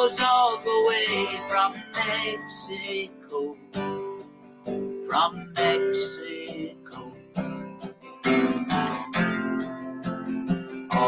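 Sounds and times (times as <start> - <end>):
acoustic guitar strumming: 0.0 - 11.0
person singing folk song: 0.0 - 11.0.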